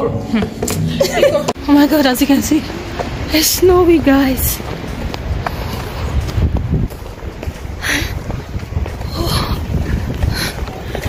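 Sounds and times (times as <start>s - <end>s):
wind buffeting microphone: 0.9s - 11.0s.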